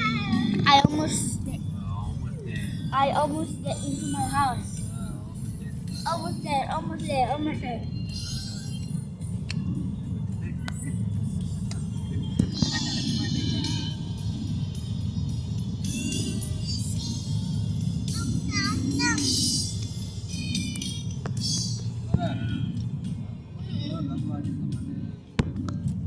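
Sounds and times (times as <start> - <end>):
voices: 0.0 - 9.0
car cabin engine rumble: 0.0 - 26.0
music: 0.0 - 26.0.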